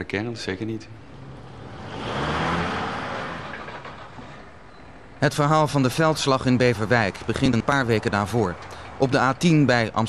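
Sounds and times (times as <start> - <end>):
vehicle driving past: 0.8 - 5.2.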